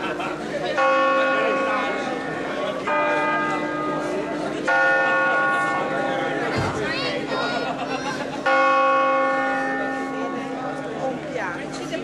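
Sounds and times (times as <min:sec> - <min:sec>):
church bell strokes: 0:00.8 - 0:06.6, 0:08.4 - 0:10.9.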